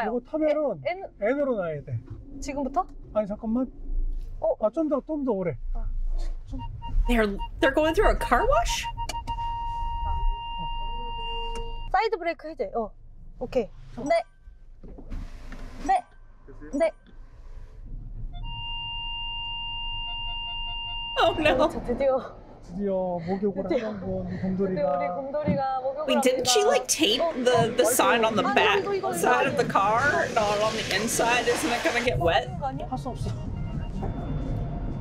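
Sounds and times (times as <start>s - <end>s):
low steady rumble: 0.0s - 26.0s, 26.9s - 35.0s
quick pulsing beep: 6.5s - 11.9s, 18.4s - 21.8s
steady electronic tone: 6.5s - 11.9s, 18.2s - 22.8s
car wash rumble: 26.5s - 32.8s.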